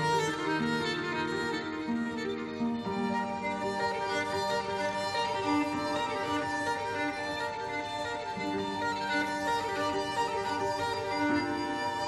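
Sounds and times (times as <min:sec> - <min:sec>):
orchestral accompaniment: 0:00.0 - 0:12.0
solo violin melody: 0:00.0 - 0:12.0.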